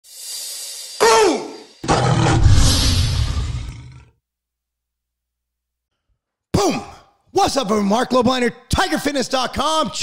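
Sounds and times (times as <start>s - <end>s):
hiss: 0.0s - 3.4s
tiger snarl: 1.0s - 4.1s
deep tiger roar: 1.8s - 4.1s.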